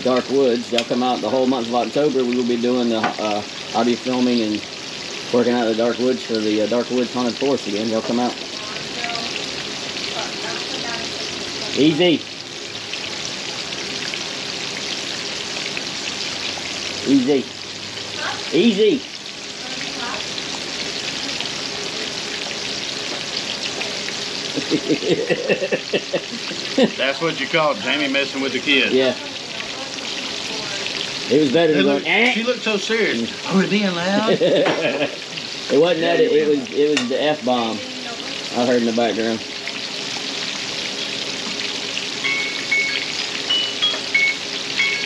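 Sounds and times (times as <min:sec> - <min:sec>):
meat sizzling in oil: 0:00.0 - 0:45.0
person speaking: 0:24.6 - 0:29.6, 0:31.3 - 0:38.1
short high chirps: 0:42.2 - 0:45.0.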